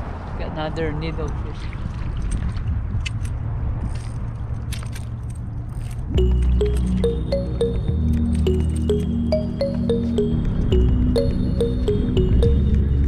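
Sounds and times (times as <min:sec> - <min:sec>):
wind rumbling on microphone: 0:00.0 - 0:06.2
plucked melody background music: 0:06.2 - 0:13.0.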